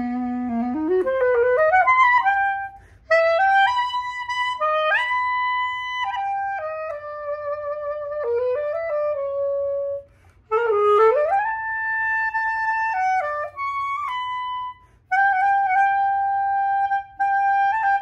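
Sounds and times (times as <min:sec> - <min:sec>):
clarinet melody: 0:00.0 - 0:18.0.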